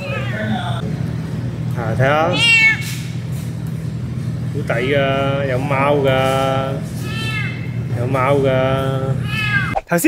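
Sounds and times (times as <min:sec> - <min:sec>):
cat meowing: 0:00.0 - 0:00.8, 0:02.3 - 0:03.1, 0:09.2 - 0:09.8.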